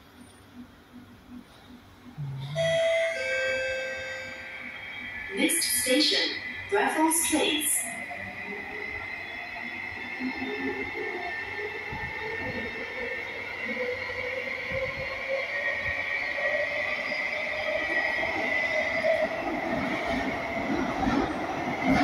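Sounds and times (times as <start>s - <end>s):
train rumbling with high whine: 0.0s - 22.0s.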